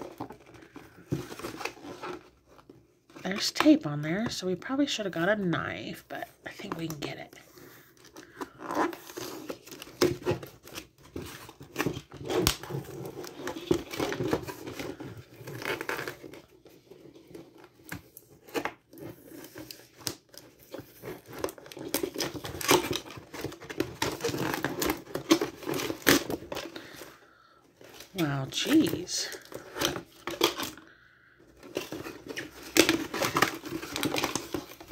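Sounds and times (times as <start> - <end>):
cardboard box being torn open: 17.2 - 27.0, 31.6 - 34.9.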